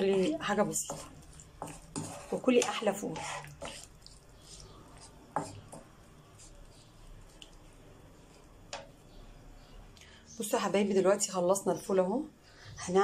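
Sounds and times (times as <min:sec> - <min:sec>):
stovetop cooking: 0:00.0 - 0:09.9.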